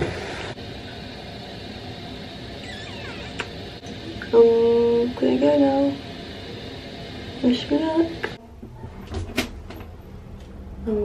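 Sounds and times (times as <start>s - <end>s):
steady background hiss: 0.0s - 8.5s.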